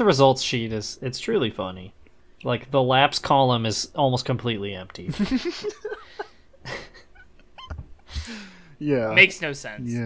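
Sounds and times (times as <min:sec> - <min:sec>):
men laughing softly: 0:05.1 - 0:08.6
breath: 0:08.1 - 0:08.8
man speaking: 0:09.8 - 0:10.0.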